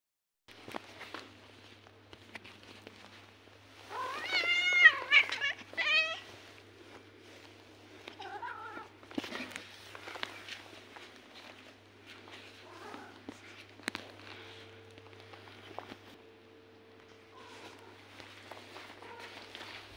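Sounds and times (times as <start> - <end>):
clicks and rustles: 0.5 - 19.9
cat meowing: 3.9 - 6.3, 8.1 - 8.9.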